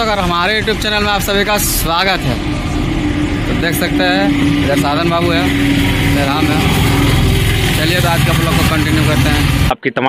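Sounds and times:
man speaking: 0.0 - 2.4, 3.5 - 6.9, 7.7 - 10.0
vehicle engine humming: 0.0 - 9.8.

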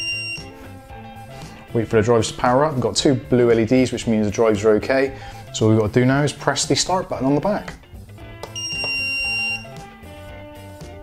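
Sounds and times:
high electronic beep: 0.0 - 0.5, 8.6 - 9.8
background music: 0.0 - 11.0.

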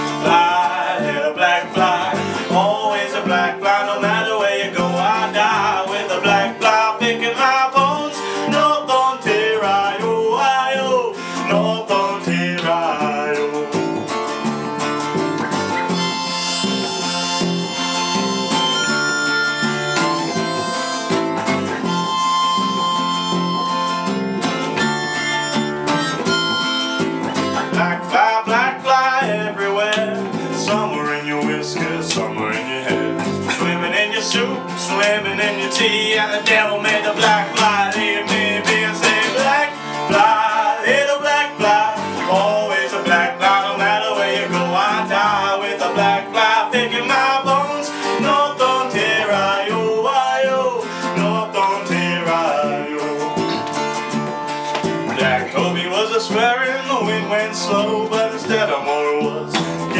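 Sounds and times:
harmonica melody: 0.0 - 59.9
strummed acoustic guitars: 0.0 - 59.9.

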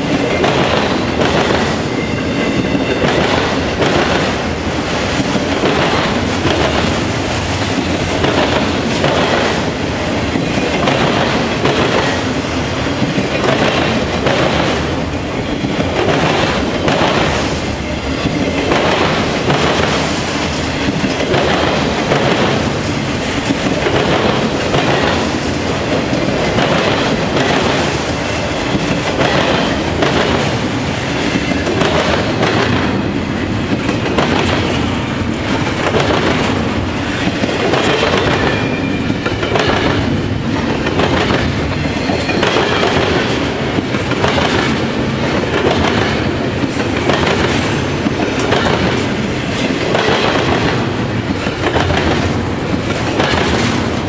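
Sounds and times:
train rumble: 0.0 - 54.0
train wheels clacking on rails: 0.0 - 54.0.

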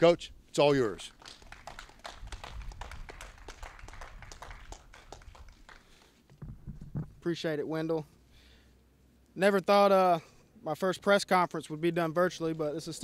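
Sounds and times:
microphone bump: 6.3 - 7.2
microphone handling taps and rustles: 6.3 - 7.3.

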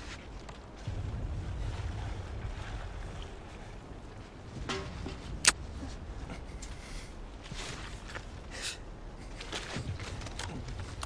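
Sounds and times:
low rumble: 0.5 - 11.0
sharp crack: 4.7 - 5.6.

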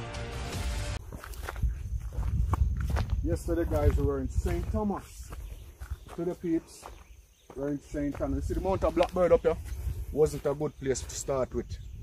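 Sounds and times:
footsteps on rock and grass: 1.0 - 11.8.

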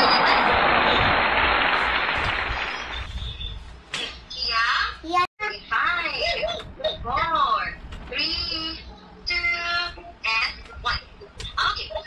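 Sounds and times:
applause: 0.0 - 3.1.

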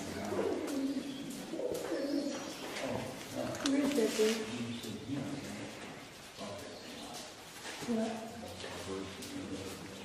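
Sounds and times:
pigeons cooing: 0.0 - 5.2.

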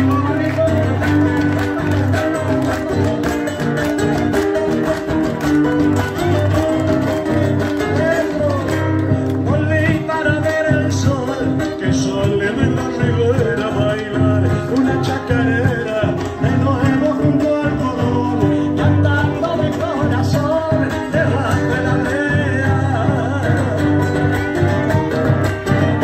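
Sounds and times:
guitar playing: 0.0 - 26.0.

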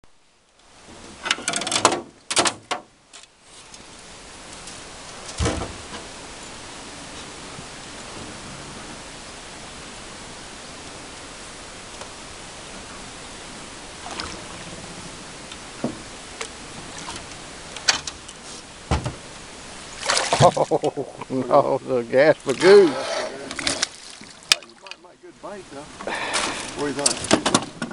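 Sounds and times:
wind hiss on microphone: 0.6 - 27.9
thump: 5.4 - 6.0, 18.9 - 19.2
clattering knocks: 18.9 - 19.2.

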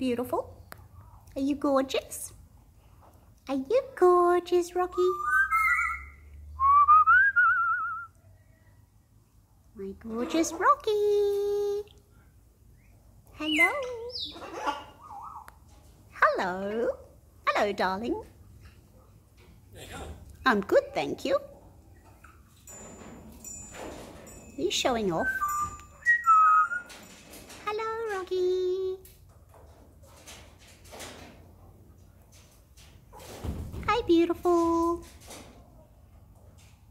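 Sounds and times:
high-pitched bird calls: 5.0 - 6.3, 12.8 - 15.6, 25.2 - 27.0
parrot whistling: 5.2 - 8.0, 25.2 - 26.9.

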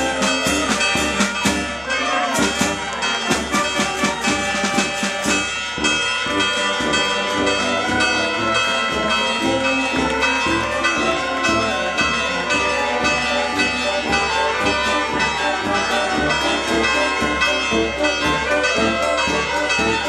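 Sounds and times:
brass band playing: 0.0 - 20.0
percussion strokes: 0.0 - 20.0.

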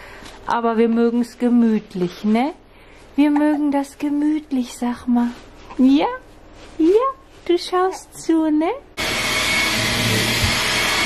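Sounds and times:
stick vacuum cleaner running: 9.0 - 11.0.

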